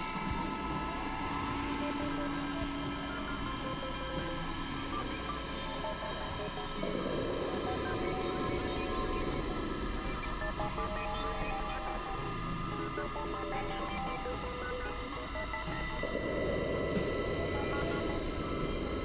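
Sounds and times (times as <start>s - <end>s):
grainy low synth drone: 0.0s - 19.0s.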